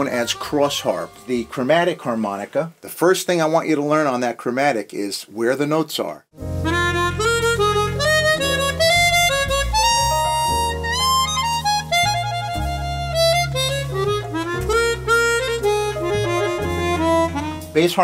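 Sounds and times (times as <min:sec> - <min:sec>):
harmonica melody: 0:00.0 - 0:02.4, 0:06.4 - 0:18.0.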